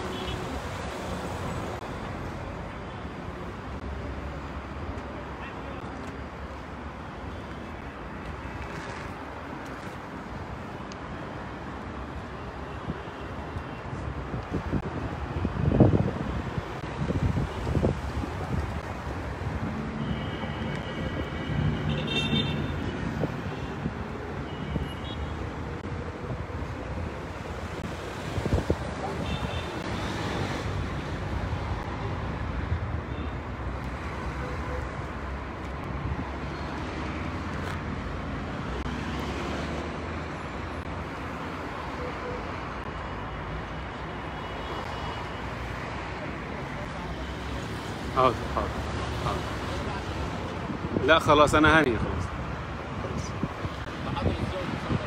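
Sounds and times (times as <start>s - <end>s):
road traffic: 0.0s - 55.0s.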